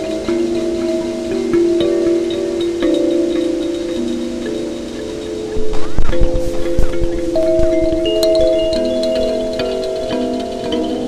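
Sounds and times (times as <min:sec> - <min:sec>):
electric kalimba with delay: 0:00.0 - 0:11.0.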